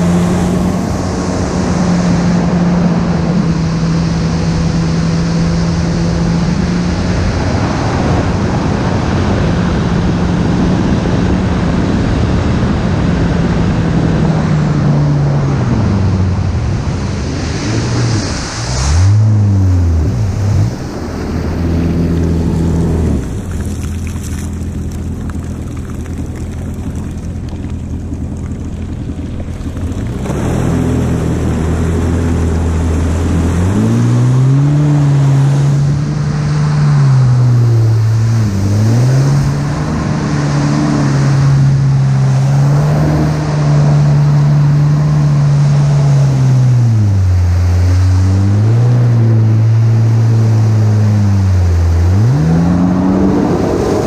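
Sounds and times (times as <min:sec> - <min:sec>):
jet ski engine running: 0:00.0 - 0:54.0
wind: 0:00.0 - 0:54.0.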